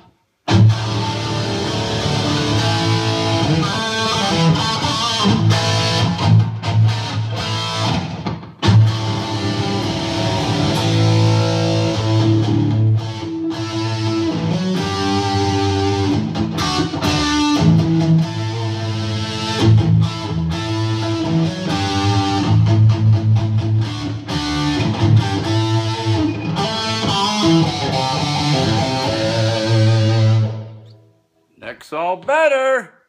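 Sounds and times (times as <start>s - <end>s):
electric guitar riffs and chords: 0.0s - 31.2s.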